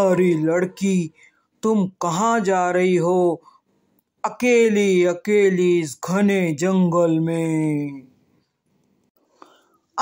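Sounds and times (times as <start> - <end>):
faint breath or mouth noise: 9.2 - 10.0.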